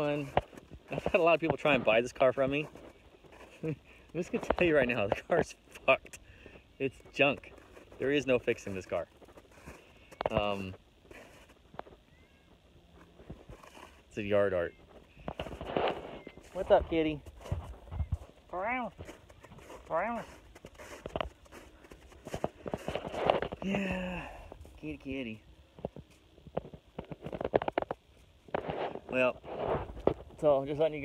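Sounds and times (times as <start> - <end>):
packed snow crunching: 0.0 - 12.3, 13.0 - 25.4
faint cat meow: 12.0 - 12.8.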